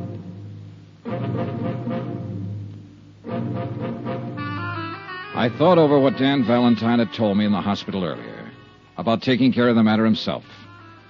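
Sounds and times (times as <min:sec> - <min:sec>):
sustained dramatic music chords: 0:00.0 - 0:09.0.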